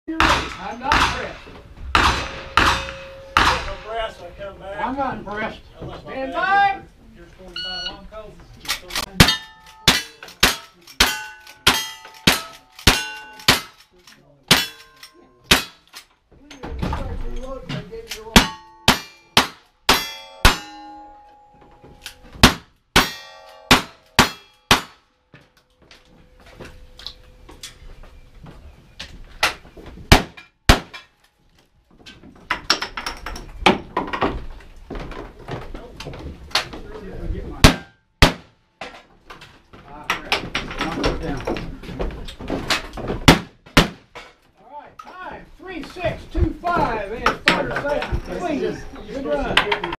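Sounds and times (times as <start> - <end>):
gunshots: 0.2 - 4.0, 37.6 - 38.5
steel target ringing: 2.0 - 4.2, 18.4 - 21.8, 23.0 - 25.0.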